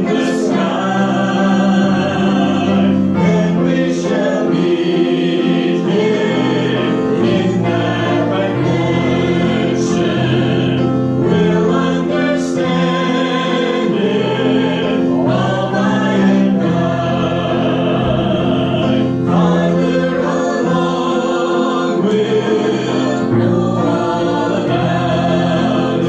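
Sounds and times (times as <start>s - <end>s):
voices singing a hymn: 0.0s - 26.0s.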